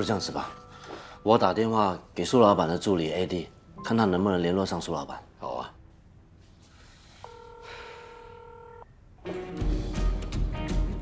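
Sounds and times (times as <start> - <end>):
telephone ringback tone: 7.2 - 8.9.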